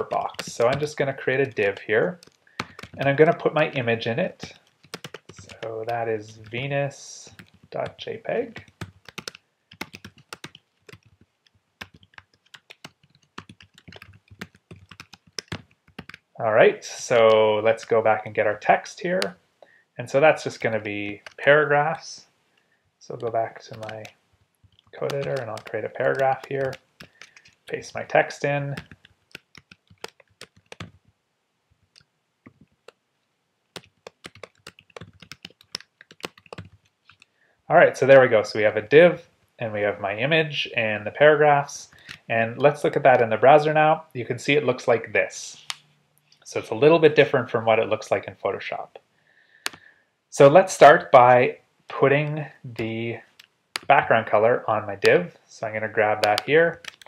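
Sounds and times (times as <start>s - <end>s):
typing on computer keyboard: 0.0s - 3.5s, 4.4s - 6.7s, 7.3s - 16.3s, 20.7s - 21.6s, 23.2s - 27.9s, 28.5s - 31.0s, 33.8s - 37.3s, 52.7s - 53.9s, 56.2s - 57.0s.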